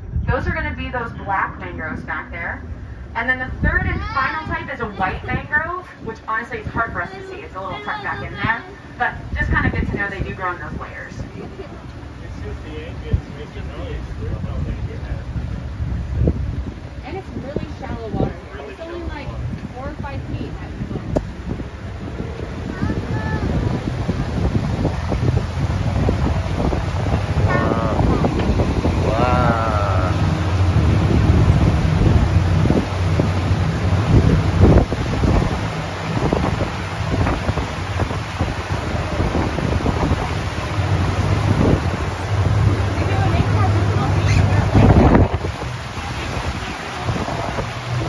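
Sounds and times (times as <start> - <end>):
boat engine hum: 0.0 - 48.0
rushing water: 0.0 - 48.0
wind buffeting microphone: 0.0 - 48.0.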